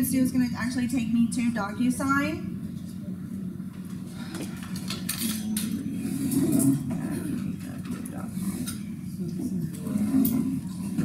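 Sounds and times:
low murmuring voices: 2.5s - 11.0s.

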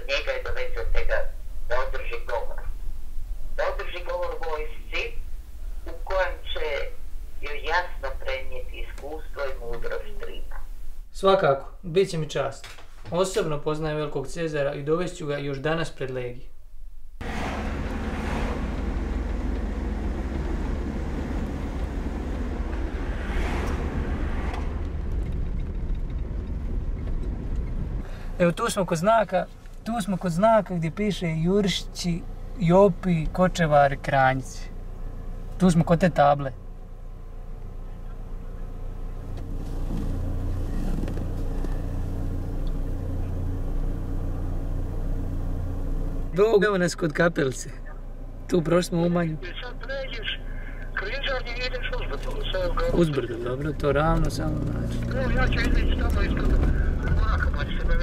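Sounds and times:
road noise inside car: 0.0s - 12.4s, 13.3s - 58.0s
car engine rumble: 0.0s - 58.0s.

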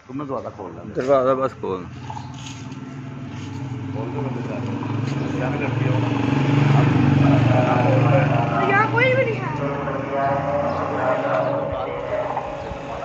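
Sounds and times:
vehicle engine running: 1.1s - 13.0s.

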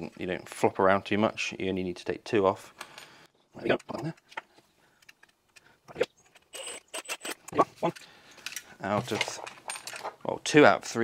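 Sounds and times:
small clicks of handled screws: 6.3s - 10.1s.

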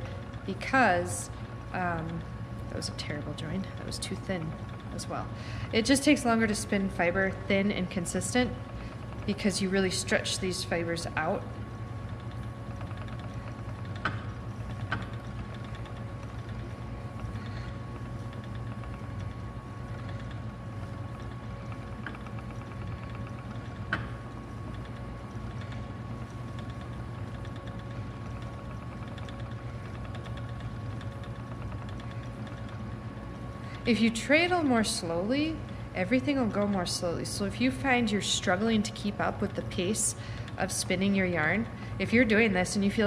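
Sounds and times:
spinning wheel running: 0.0s - 43.0s.

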